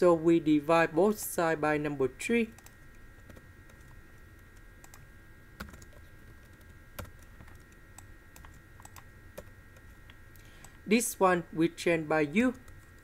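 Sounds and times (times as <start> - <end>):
faint electrical whine: 0.0 - 13.0
keyboard typing: 2.5 - 5.0, 5.6 - 9.9.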